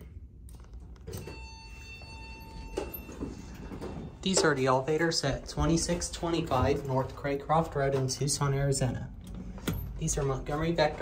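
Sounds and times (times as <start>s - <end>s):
elevator steady tone: 0.5s - 11.0s.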